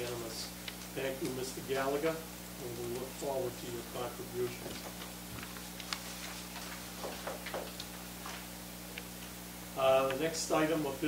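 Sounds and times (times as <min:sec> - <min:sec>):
low electrical hum: 0:00.0 - 0:11.0
paper rustling: 0:04.4 - 0:08.5.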